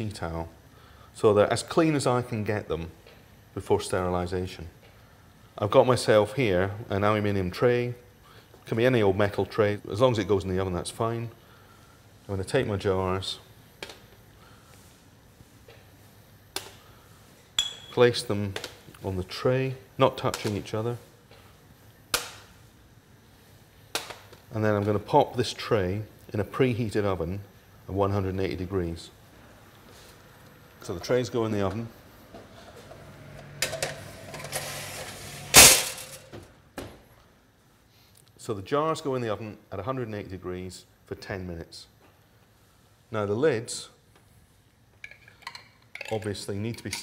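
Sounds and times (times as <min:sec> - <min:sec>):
glass clinking and ringing: 0:17.6 - 0:18.0
glass jars clinking: 0:17.6 - 0:18.0, 0:45.0 - 0:47.0.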